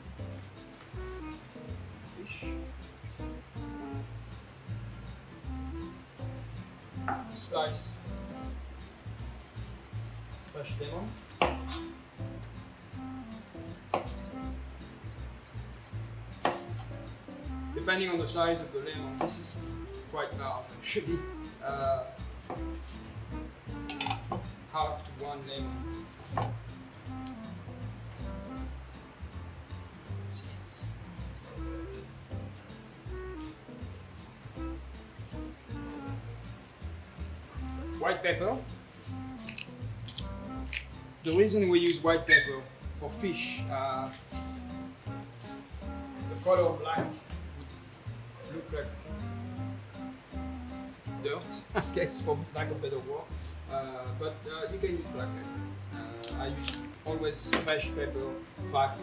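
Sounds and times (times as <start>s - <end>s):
background music: 0.0s - 59.0s
knife knocking on cutting board: 7.0s - 7.3s, 11.4s - 11.7s, 13.9s - 14.2s, 16.4s - 16.8s, 26.3s - 26.6s
pepper mill grinding: 39.4s - 42.0s, 56.1s - 57.1s.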